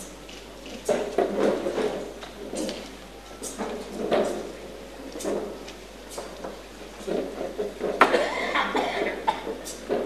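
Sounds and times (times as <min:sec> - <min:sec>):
person coughing: 0:08.0 - 0:09.6.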